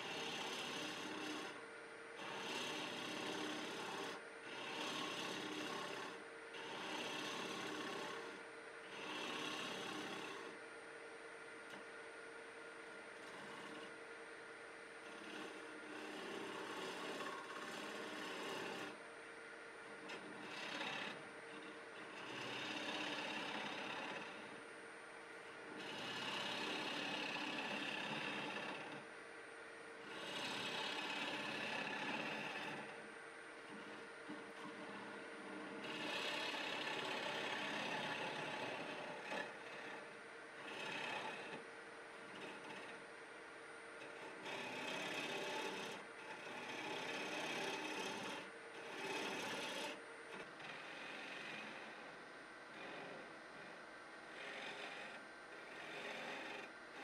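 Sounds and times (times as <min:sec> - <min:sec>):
gouge cutting wood on lathe: 0:00.0 - 0:10.6, 0:12.9 - 0:14.0, 0:14.9 - 0:19.0, 0:19.8 - 0:24.7, 0:25.3 - 0:29.1, 0:30.0 - 0:43.1, 0:44.0 - 0:57.0
lathe humming: 0:00.0 - 0:57.0.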